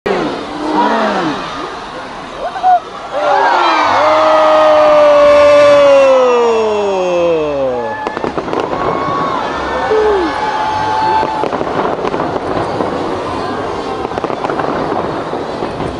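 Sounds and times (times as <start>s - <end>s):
spectator cheering: 2.4s - 11.5s
fireworks crackling and popping: 7.7s - 15.9s.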